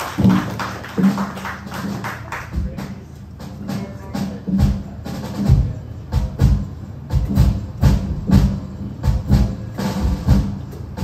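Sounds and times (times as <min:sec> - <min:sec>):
live band playing: 0:00.0 - 0:11.0
drum and cymbal strokes: 0:01.9 - 0:11.0.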